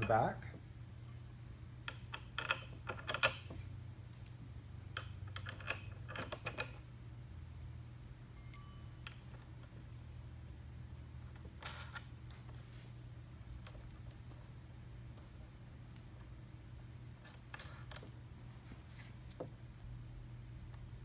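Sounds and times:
low steady hum: 0:00.0 - 0:21.0
metal bolts clinking: 0:01.0 - 0:06.9.

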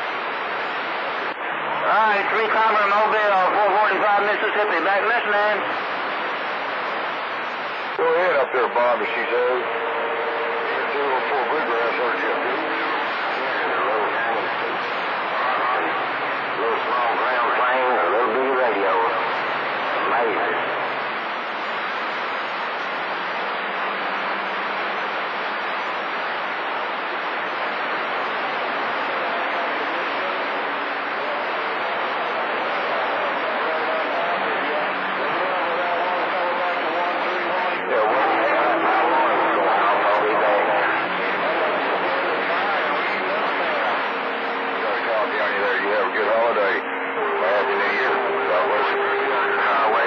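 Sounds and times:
garbled radio voices: 0:00.0 - 0:22.1, 0:26.6 - 0:50.0
radio static hiss: 0:00.0 - 0:50.0.

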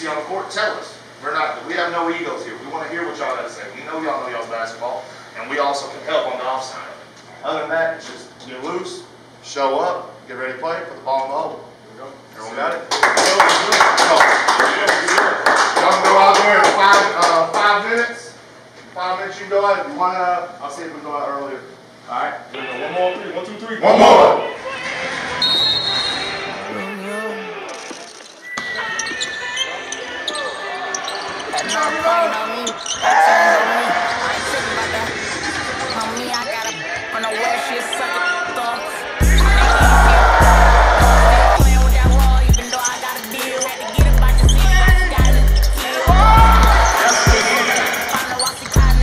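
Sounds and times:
group clapping in rhythm: 0:12.9 - 0:17.8, 0:39.2 - 0:42.6
voices: 0:22.5 - 0:49.0
basketball bouncing: 0:43.5 - 0:49.0.

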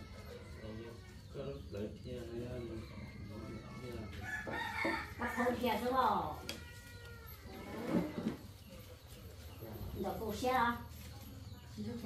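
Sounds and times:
rooster crowing: 0:02.7 - 0:05.8.

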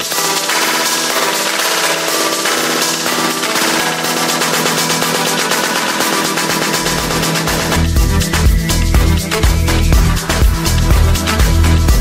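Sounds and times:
fast dense percussion hits: 0:00.0 - 0:12.0
held synth chords: 0:00.0 - 0:12.0.

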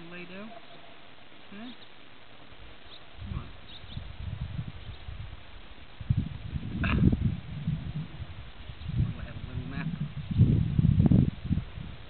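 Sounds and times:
faint bird chirps: 0:00.4 - 0:02.0, 0:02.8 - 0:04.1
wind buffeting microphone: 0:03.1 - 0:12.0.

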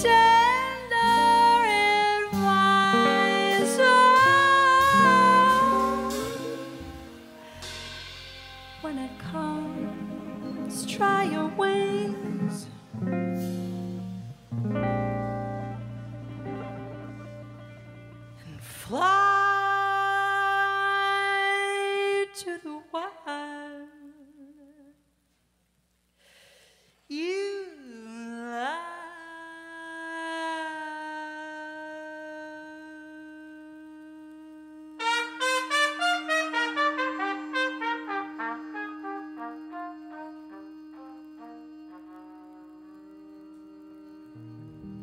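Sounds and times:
jazz combo playing: 0:00.0 - 0:18.5, 0:35.0 - 0:43.0
trumpet sustained notes: 0:00.0 - 0:19.0, 0:34.0 - 0:45.0.

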